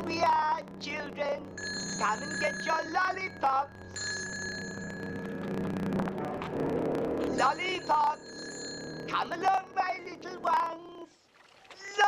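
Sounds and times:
low steady hum: 0:00.0 - 0:11.2
handbell ringing: 0:01.6 - 0:03.4, 0:04.0 - 0:05.2, 0:07.4 - 0:09.2.

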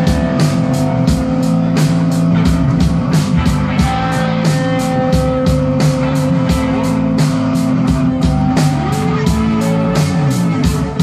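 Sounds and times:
bass line: 0:00.0 - 0:11.0
distorted electric guitars: 0:00.0 - 0:11.0
driving drum beat: 0:00.0 - 0:11.0.

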